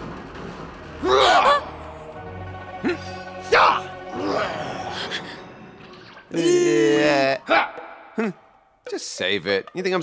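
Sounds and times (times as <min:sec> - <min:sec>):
low background music score: 0:00.0 - 0:10.0.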